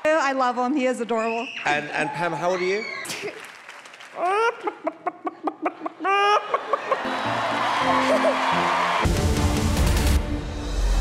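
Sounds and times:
music: 6.9 - 11.0.

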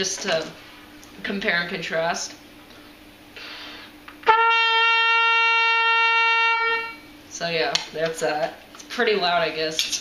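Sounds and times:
intake of breath: 3.4 - 4.0
trumpet held note: 4.2 - 7.0.

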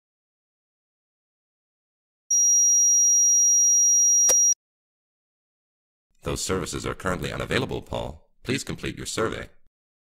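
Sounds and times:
high-pitched electronic beep tone: 2.3 - 4.6.

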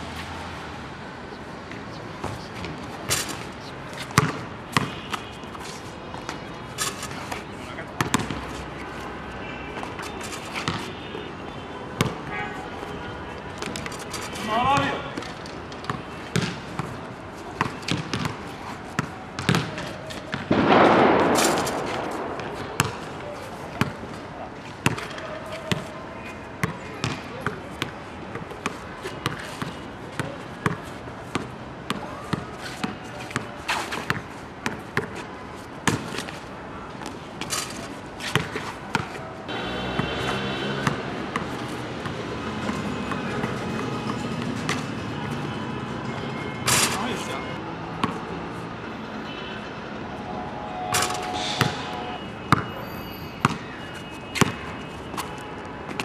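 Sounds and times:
basketball bouncing on court: 4.2 - 5.2, 8.0 - 8.4, 12.0 - 12.3, 15.8 - 18.4, 19.0 - 24.1, 24.8 - 25.9, 26.6 - 28.5, 29.2 - 33.0, 34.0 - 35.2, 35.8 - 36.3, 38.3 - 39.1, 40.8 - 45.0, 48.0 - 48.2, 52.5 - 52.7, 53.4 - 53.7
basketball bouncing on hard court: 4.2 - 5.2, 8.0 - 8.4, 15.9 - 18.4, 19.0 - 24.1, 26.6 - 28.4, 52.5 - 52.7, 53.4 - 53.6.

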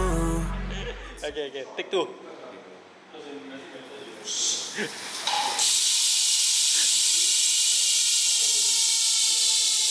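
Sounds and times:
bike hub freewheeling buzz: 5.6 - 9.9.

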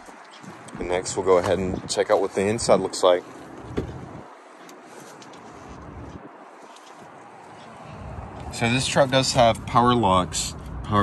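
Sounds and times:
wind on microphone: 0.0 - 3.0.

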